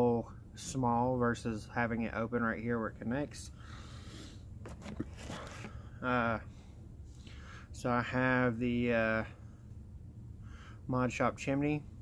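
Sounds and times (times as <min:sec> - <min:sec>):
quiet rustling: 0:04.6 - 0:05.8.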